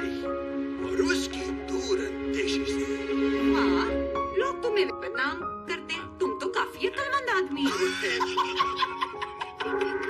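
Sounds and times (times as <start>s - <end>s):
man chuckling: 7.7s - 10.0s.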